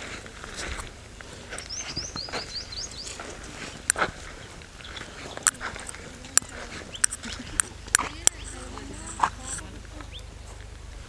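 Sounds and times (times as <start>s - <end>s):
faint outdoor background noise: 0.0s - 11.0s
small bird chirping: 0.0s - 11.0s
sharp clicks: 0.6s - 10.9s.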